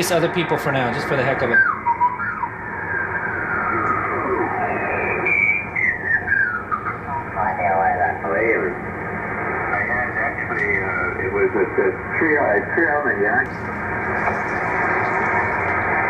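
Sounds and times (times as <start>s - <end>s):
mistuned radio voices: 0.0s - 16.0s
radio band noise: 0.0s - 16.0s.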